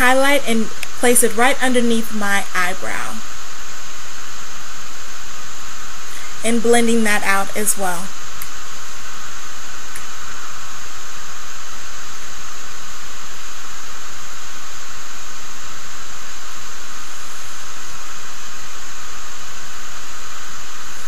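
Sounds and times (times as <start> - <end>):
recording noise hiss: 0.0 - 21.0.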